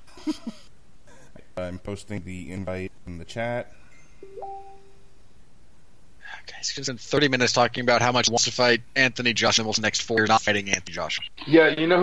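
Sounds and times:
two-note notification chime: 0:04.2 - 0:04.9.

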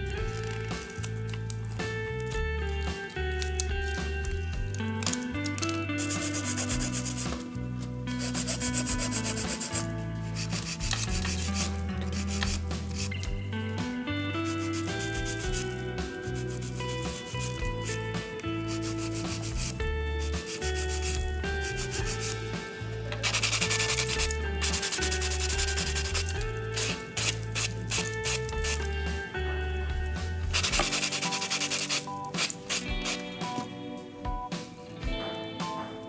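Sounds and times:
background music with bass: 0:00.0 - 0:36.0
nail file scratching: 0:06.0 - 0:07.4, 0:08.1 - 0:13.3, 0:14.4 - 0:18.0, 0:18.6 - 0:22.5, 0:23.2 - 0:28.9, 0:30.5 - 0:33.2.

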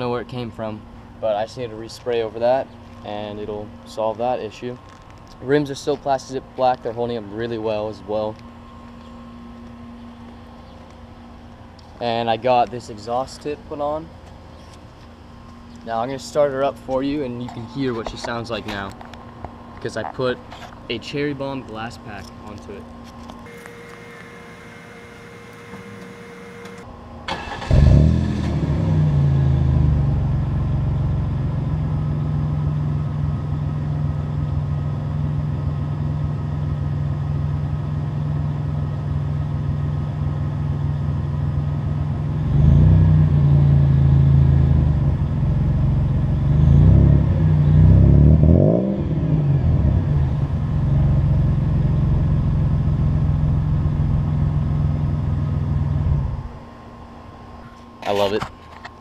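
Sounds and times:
van engine cranking: 0:25.4 - 0:28.1
van engine idling and revving: 0:27.5 - 0:56.4.

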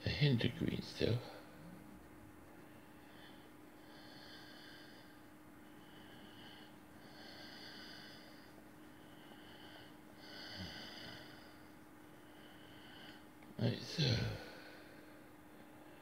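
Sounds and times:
man's nasal breathing: 0:02.6 - 0:13.3.

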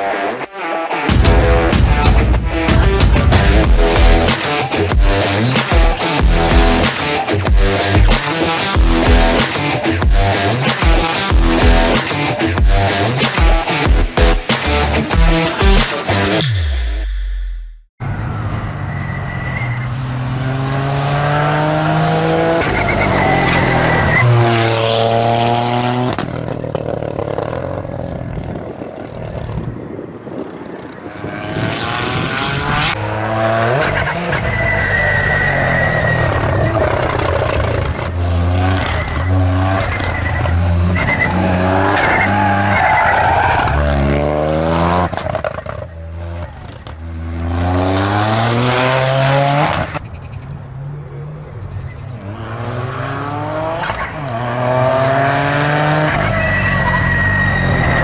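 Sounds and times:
car engine revving hard: 0:20.0 - 0:26.2, 0:31.2 - 0:34.6, 0:43.6 - 0:50.0, 0:52.2 - 0:58.0.

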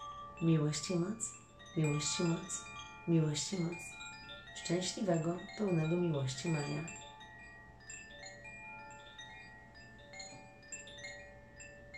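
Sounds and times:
wind chime ringing: 0:00.0 - 0:11.9.

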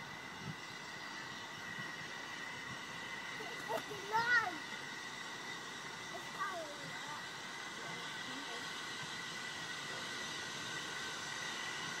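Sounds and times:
steam locomotive hiss: 0:00.0 - 0:12.0.

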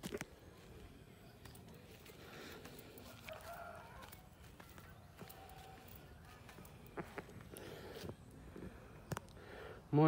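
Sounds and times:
rooster crowing: 0:03.0 - 0:04.4.

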